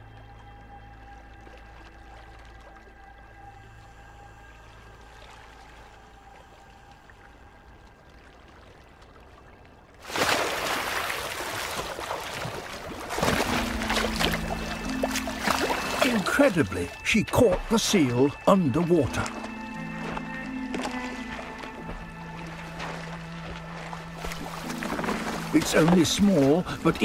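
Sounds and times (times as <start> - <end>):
tense background music: 0.0 - 10.0, 11.9 - 27.0
water splashing and churning: 0.1 - 27.0.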